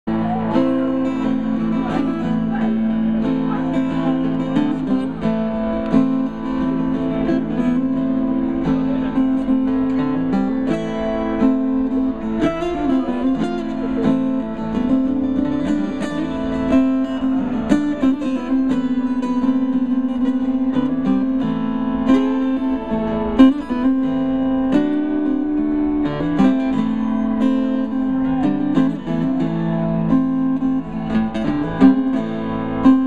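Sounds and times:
acoustic guitars strumming: 0.1s - 33.0s.

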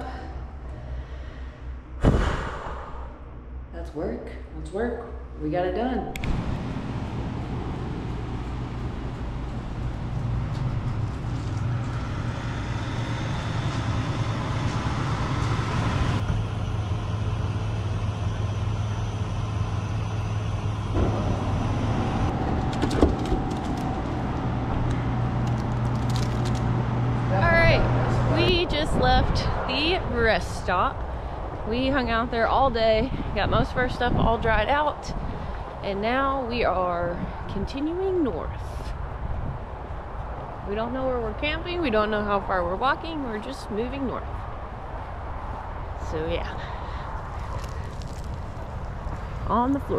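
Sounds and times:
low engine hum: 5.3s - 49.9s
road traffic noise: 6.1s - 49.9s.

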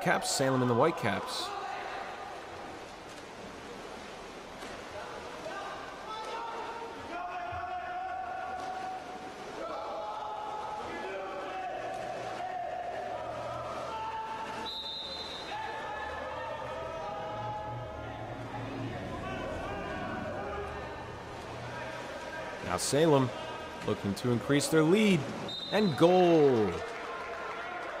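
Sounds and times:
water splashing: 0.0s - 27.4s
short high whistle: 14.6s - 15.6s
people shouting long calls: 15.4s - 22.1s.

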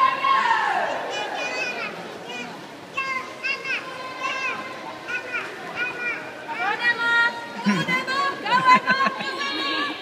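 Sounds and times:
children shouting and cheering: 0.0s - 6.8s.

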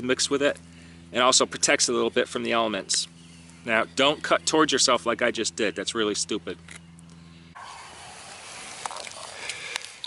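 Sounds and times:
low steady hum: 0.0s - 10.0s
outdoor hiss: 7.6s - 10.0s.

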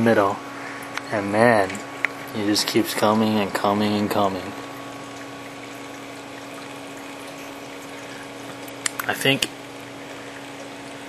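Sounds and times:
aquarium pump hum: 0.0s - 11.0s
water circulating: 0.0s - 11.0s.

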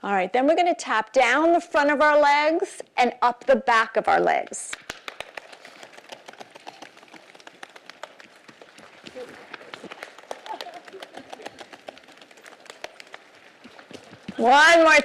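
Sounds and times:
hands patting legs: 4.7s - 15.0s.

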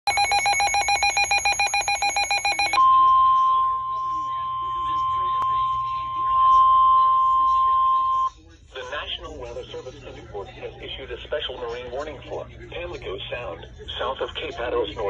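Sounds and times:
rapid pulsing alarm beeps: 0.1s - 3.1s
steady warning tone: 0.1s - 8.3s.

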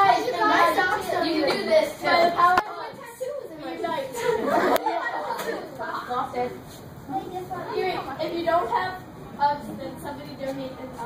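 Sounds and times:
girls chattering: 0.0s - 11.0s.

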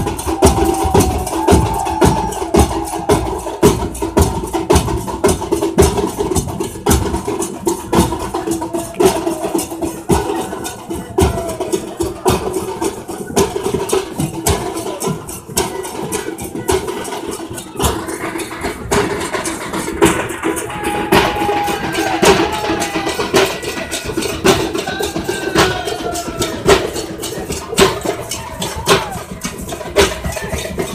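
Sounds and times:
crowd noise: 0.0s - 30.9s
drums beaten with sticks: 0.0s - 30.9s.

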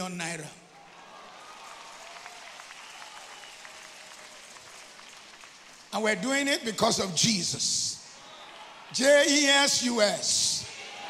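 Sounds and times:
crowd applauding: 0.7s - 7.3s, 8.0s - 11.0s.

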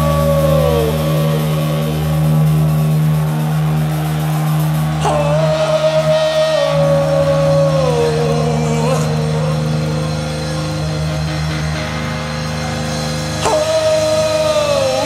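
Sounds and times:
man singing long notes: 0.0s - 11.8s, 13.2s - 15.0s
low guitar drone: 0.0s - 15.0s.

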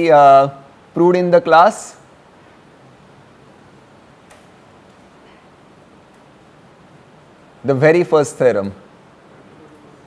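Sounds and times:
faint clicks: 4.2s - 5.4s.

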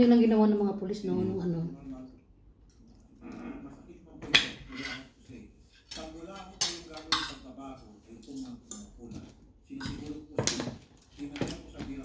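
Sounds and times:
cutlery clinking on plates: 4.2s - 5.1s, 5.8s - 7.6s, 8.2s - 12.0s.

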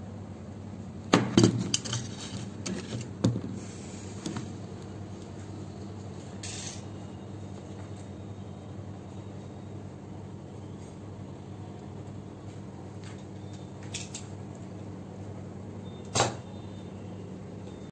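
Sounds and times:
low electrical hum: 0.0s - 17.9s.

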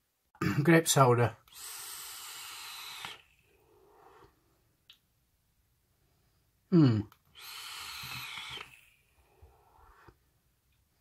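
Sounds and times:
person exhaling vapour: 1.5s - 4.4s, 6.7s - 10.2s.

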